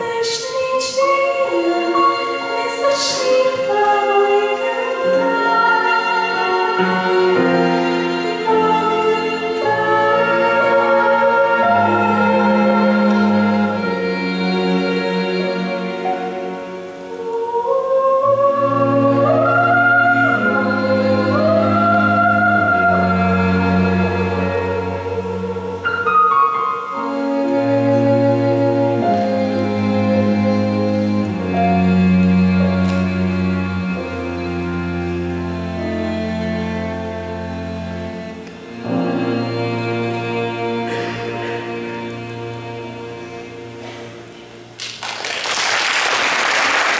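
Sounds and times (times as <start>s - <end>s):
piano and strings playing chords: 0.0s - 46.9s
audience applause: 44.8s - 46.9s.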